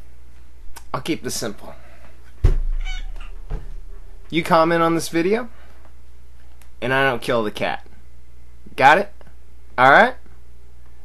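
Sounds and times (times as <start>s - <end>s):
low thumps: 2.4s - 4.8s
cat meowing: 2.8s - 3.4s.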